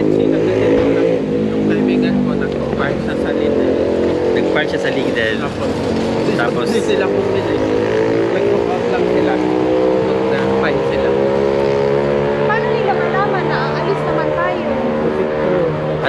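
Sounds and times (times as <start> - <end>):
faint voices: 0.0 - 11.1, 12.5 - 16.0
engine idling: 1.4 - 7.6.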